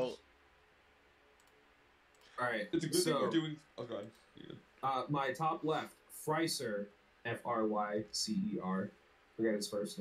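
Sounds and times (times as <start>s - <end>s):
computer mouse clicks: 1.3s - 2.3s
man's voice: 2.6s - 4.0s.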